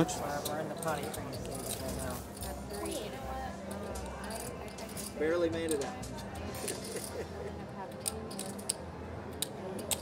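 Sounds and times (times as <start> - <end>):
murmur of voices: 0.0 - 10.0
poker chips clicking: 7.9 - 10.0.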